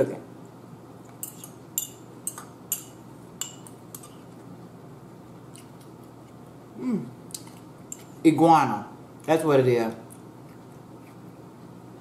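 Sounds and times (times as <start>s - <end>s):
fork clinking against ceramic cup: 1.2s - 4.1s.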